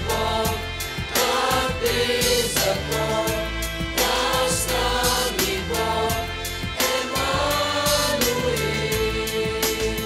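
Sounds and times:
accompaniment with steady beat: 0:00.0 - 0:10.0
youth choir singing: 0:00.0 - 0:10.0.

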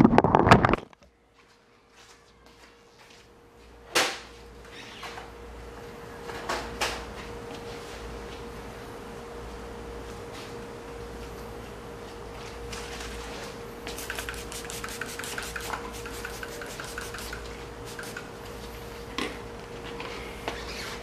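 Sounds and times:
steady hum: 0:03.2 - 0:21.0
spray bottle spritzing: 0:13.9 - 0:18.3.

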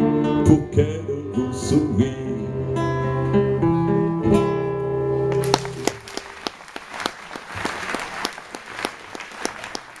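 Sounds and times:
audience applauding: 0:05.3 - 0:10.0.

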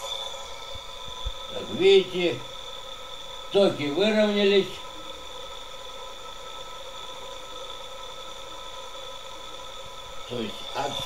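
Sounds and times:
electric motor whine: 0:00.0 - 0:11.0
hiss: 0:00.0 - 0:11.0.

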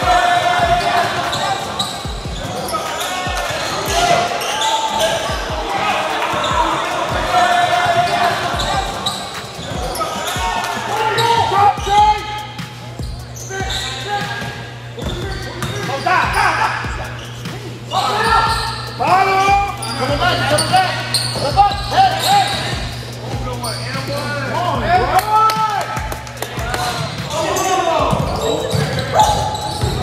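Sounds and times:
voices of players and spectators: 0:00.0 - 0:30.0
sneaker squeaks: 0:00.2 - 0:06.8, 0:07.8 - 0:24.6, 0:26.9 - 0:30.0.

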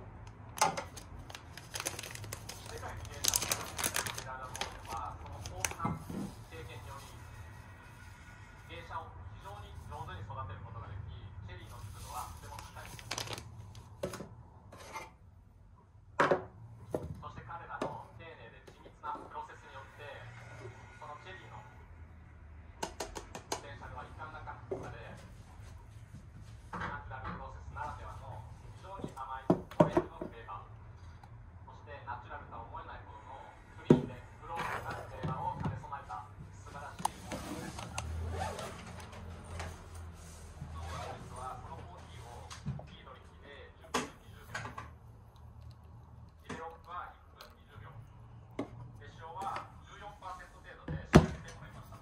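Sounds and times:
foil pouch crinkling: 0:00.9 - 0:05.8, 0:12.4 - 0:13.8
sharp foil crackles: 0:01.2 - 0:05.8, 0:12.6 - 0:13.5.

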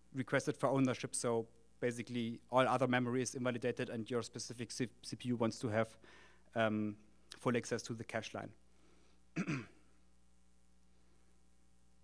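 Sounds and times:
low steady hum: 0:00.0 - 0:12.0
man clearing throat: 0:09.4 - 0:09.9.

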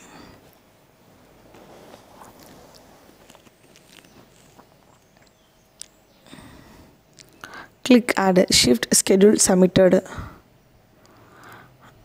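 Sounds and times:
faint breath: 0:00.0 - 0:00.6, 0:06.2 - 0:07.8, 0:10.1 - 0:12.0
person narrating: 0:07.9 - 0:10.2.

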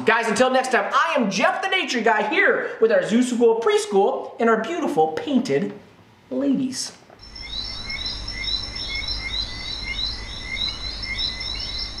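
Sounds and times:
animal chirps: 0:07.2 - 0:12.0
high-pitched trill: 0:07.2 - 0:12.0.

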